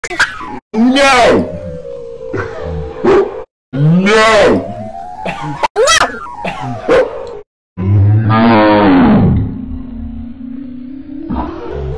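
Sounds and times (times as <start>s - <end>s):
steady low tone: 9.1s - 11.9s.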